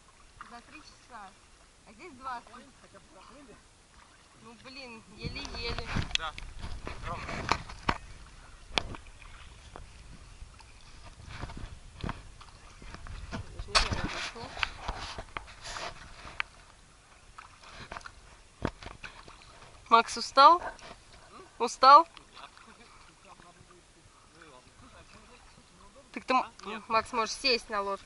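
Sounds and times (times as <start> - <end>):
river water sloshing and splashing: 0.0 - 28.0.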